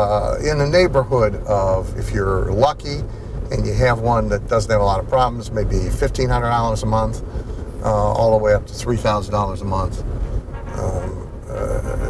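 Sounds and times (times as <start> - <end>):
road rumble inside car: 0.0 - 12.0
man humming hesitantly: 10.7 - 12.0.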